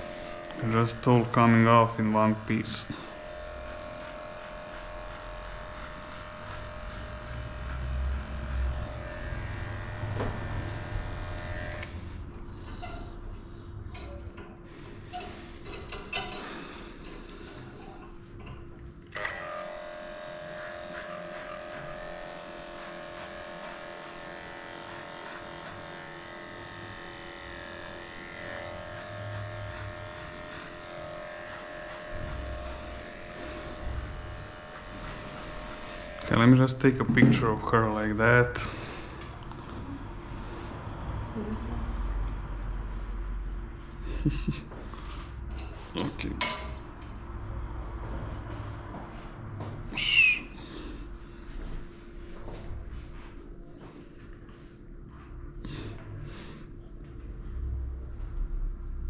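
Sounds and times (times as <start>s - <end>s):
electric clipper motor humming: 0.0s - 12.0s, 19.1s - 36.5s.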